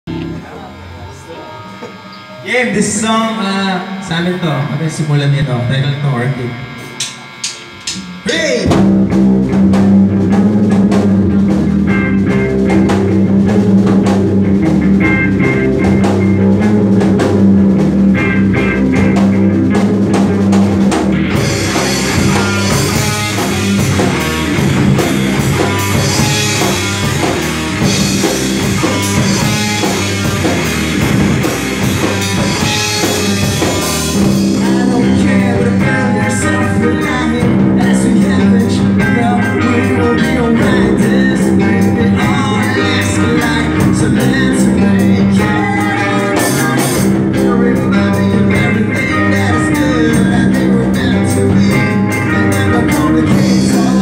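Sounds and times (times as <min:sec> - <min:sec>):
amplifier hum: 0:00.1 - 0:47.6
drum kit beat: 0:00.1 - 0:54.0
electric guitars: 0:00.1 - 0:54.0
faint band playing: 0:00.1 - 0:54.0
background voices: 0:33.6 - 0:54.0.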